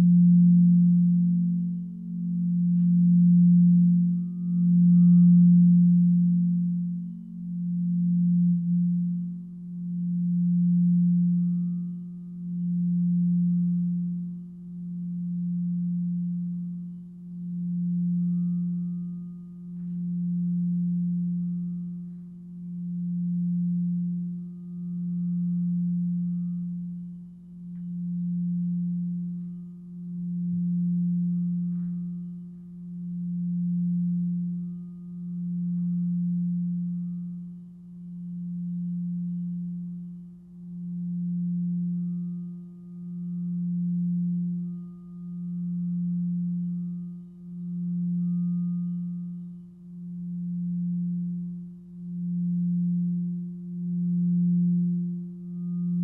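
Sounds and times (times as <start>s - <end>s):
singing bowls ringing: 0.0s - 56.0s.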